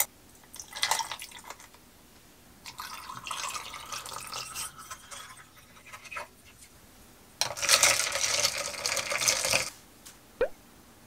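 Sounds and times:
liquid pouring over ice: 0:00.5 - 0:01.7, 0:02.7 - 0:06.3, 0:07.5 - 0:09.7
ice clinking: 0:00.6 - 0:01.6, 0:02.7 - 0:06.3, 0:07.4 - 0:09.7.

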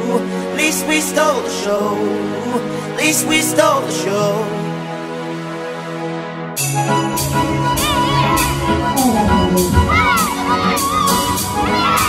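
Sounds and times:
children shouting and cheering: 0:07.7 - 0:12.0
dance music with steady beat: 0:07.8 - 0:11.1.

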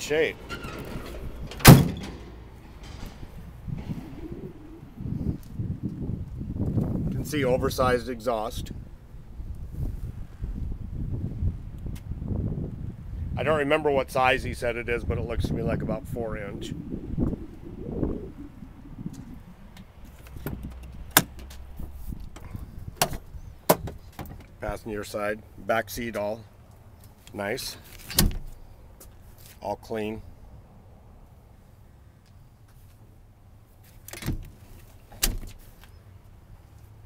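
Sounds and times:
door clunk shutting: 0:00.2 - 0:04.6, 0:28.1 - 0:28.5.

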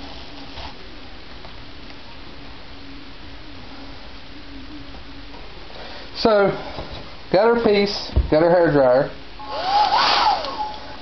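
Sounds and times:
hair dryer fan whine: 0:09.4 - 0:11.0.

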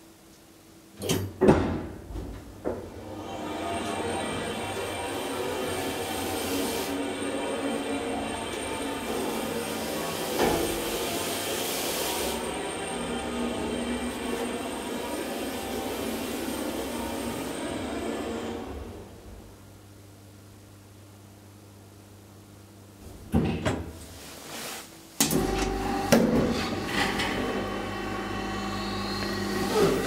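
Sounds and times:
elevator mechanical hum and whine: 0:00.0 - 0:24.3, 0:25.2 - 0:30.0.

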